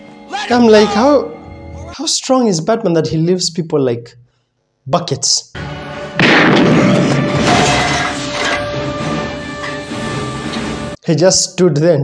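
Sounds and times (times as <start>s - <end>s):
dramatic orchestral music: 5.6s - 11.0s.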